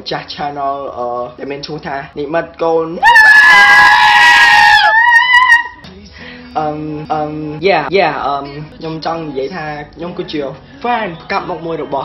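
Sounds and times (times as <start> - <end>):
goat screaming: 3.0 - 5.8.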